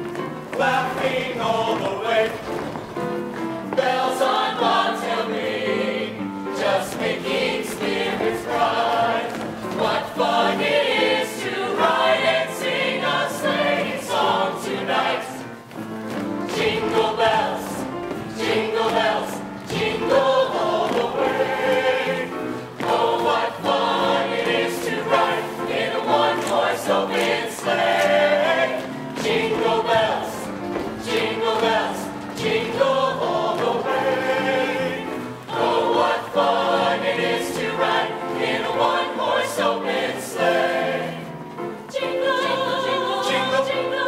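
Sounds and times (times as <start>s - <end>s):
mixed choir singing in parts: 0.0s - 44.0s.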